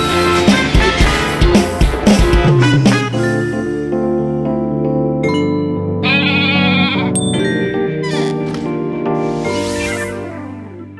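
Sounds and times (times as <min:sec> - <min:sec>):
light background music: 0:00.0 - 0:10.9
goat bleat: 0:06.0 - 0:07.2.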